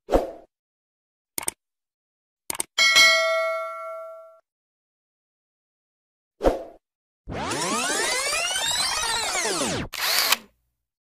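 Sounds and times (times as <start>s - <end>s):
notification bell ding: 2.8s - 4.4s.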